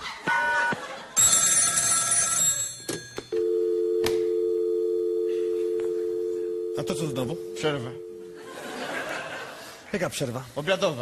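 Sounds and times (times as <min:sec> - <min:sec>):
telephone bell ringing: 0:00.7 - 0:08.9
low telephone tone: 0:01.2 - 0:08.5.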